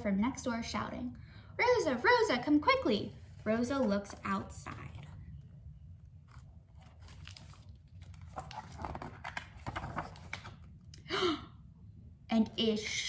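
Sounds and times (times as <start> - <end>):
low room hum: 0.0 - 13.0
book pages rustling: 3.1 - 10.7.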